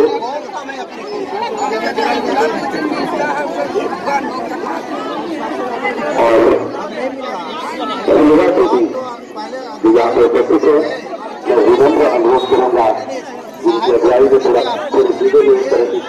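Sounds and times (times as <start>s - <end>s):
crowd chatter: 0.0s - 16.0s
loud voice: 6.1s - 6.8s.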